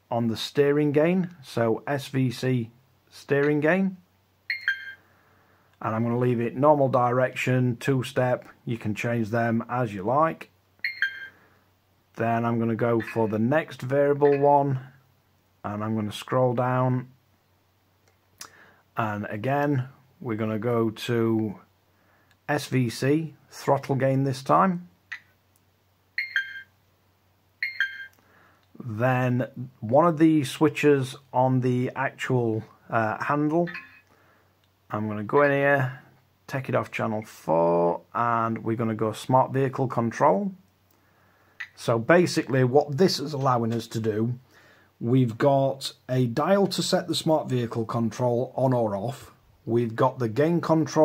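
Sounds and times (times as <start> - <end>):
touchscreen electronic beeps: 4.5 - 5.0, 10.8 - 11.4, 14.2 - 14.5, 26.2 - 26.7, 27.6 - 28.2, 33.6 - 34.1.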